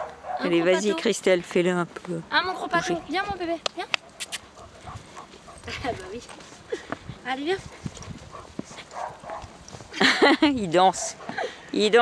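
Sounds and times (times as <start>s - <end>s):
low outdoor background: 0.0s - 12.0s
woman speaking to dog: 0.3s - 1.2s, 2.2s - 4.0s, 5.6s - 6.4s, 7.2s - 7.8s.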